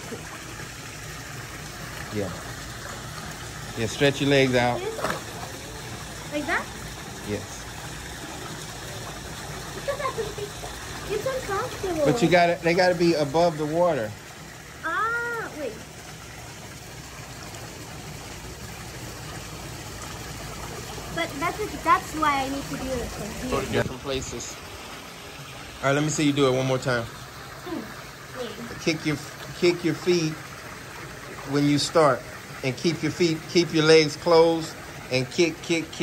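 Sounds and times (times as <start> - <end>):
pool water splashing from swimmer: 0.0 - 36.0.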